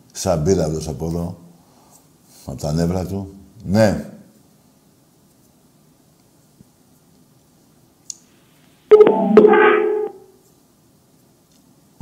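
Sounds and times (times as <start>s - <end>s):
electronic chord tone: 8.9s - 10.3s.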